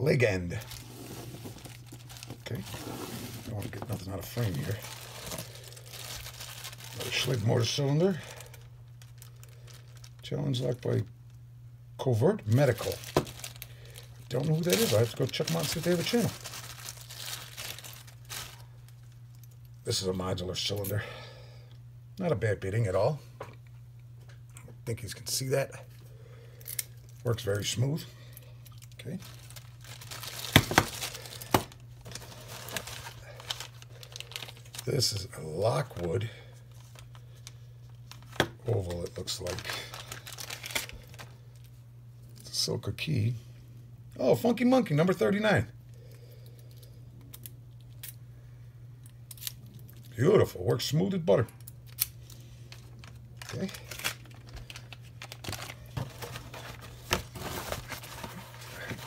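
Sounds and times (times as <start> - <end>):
low steady hum: 0.0 - 59.0
plastic bag crinkling: 0.2 - 11.1, 12.4 - 19.5, 28.7 - 41.7, 51.9 - 59.0.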